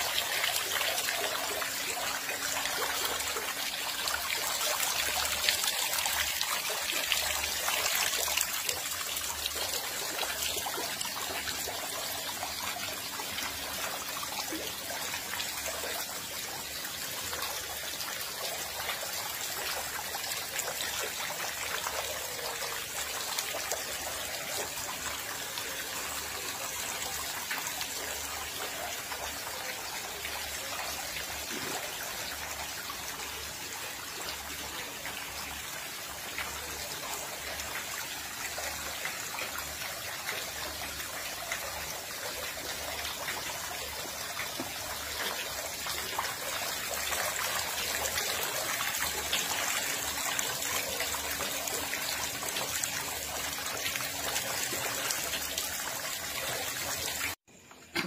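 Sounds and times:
water splashing into tank: 30.5 - 32.6.

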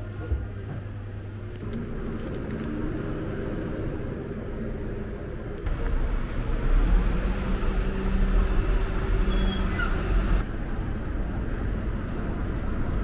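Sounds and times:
outdoor street ambience: 0.0 - 13.0
garbage truck rumbling: 1.6 - 10.8.

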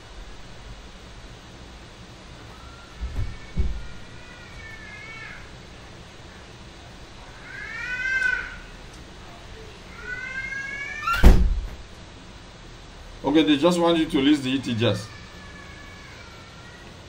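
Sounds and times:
loud thump: 11.2 - 11.8.

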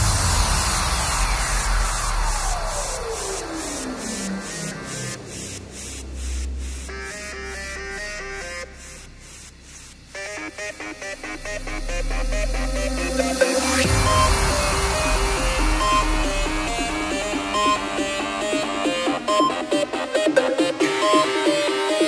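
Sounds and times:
synth tone sweeping downward: 0.0 - 9.6, 10.2 - 20.3
stepped synth riff: 0.0 - 22.0
ticking hi-hats: 0.0 - 22.0.

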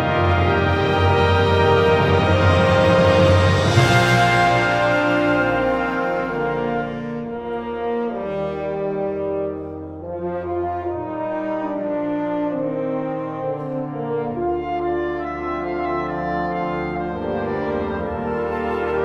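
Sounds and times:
concert band playing brass chords: 0.0 - 19.0.

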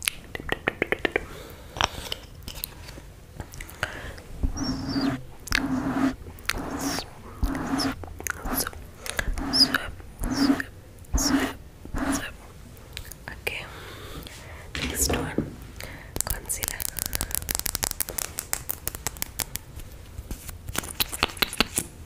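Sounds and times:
mouth sounds: 3.5 - 12.4
close whispering: 3.6 - 12.4, 13.0 - 17.4.

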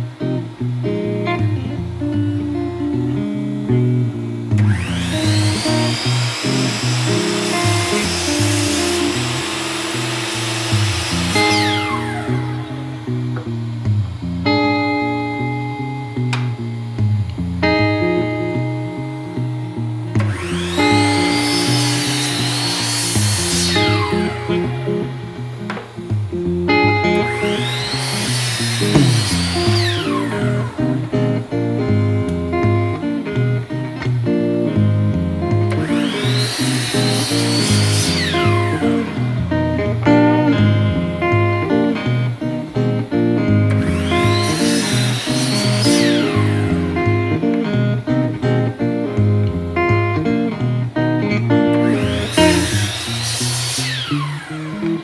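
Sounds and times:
acoustic guitar music: 0.0 - 55.0
miter saw cutting wood: 4.6 - 13.1, 20.2 - 25.0, 27.2 - 31.7, 35.8 - 39.2, 43.8 - 47.0, 51.8 - 55.0.

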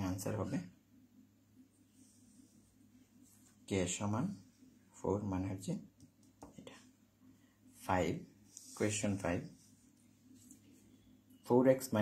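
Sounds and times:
person speaking: 0.0 - 0.9, 1.9 - 12.0.

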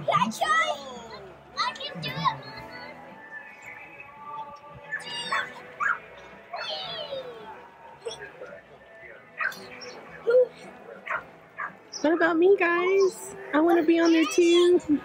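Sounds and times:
children calling and squealing: 0.0 - 8.6, 9.4 - 12.3, 12.9 - 15.0
faint steady background tones: 0.0 - 15.0.

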